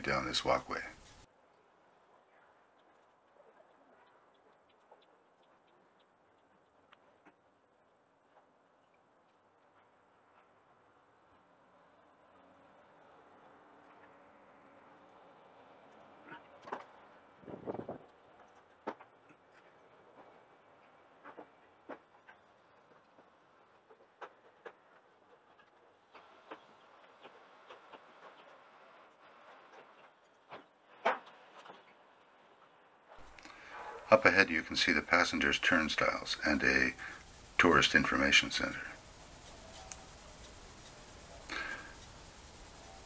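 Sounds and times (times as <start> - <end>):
low steady hum: 0.0 - 43.0.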